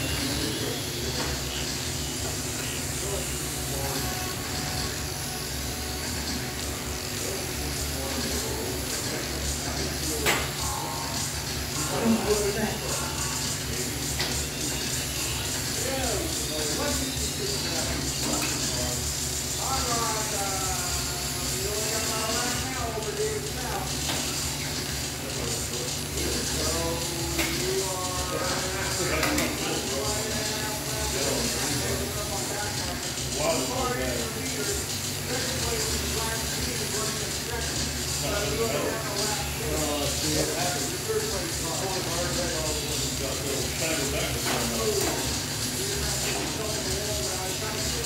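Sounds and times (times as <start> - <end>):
voices talking: 0.0 - 48.0.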